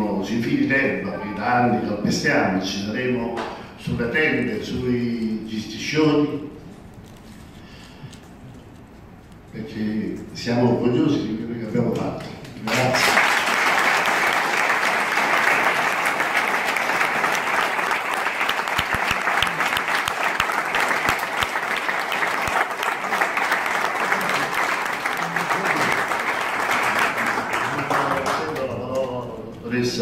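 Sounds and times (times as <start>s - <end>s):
audience applause: 12.7s - 28.7s.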